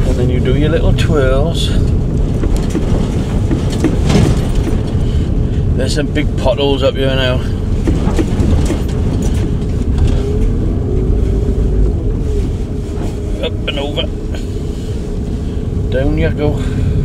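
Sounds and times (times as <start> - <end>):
van engine and tyres rumbling: 0.0 - 17.0.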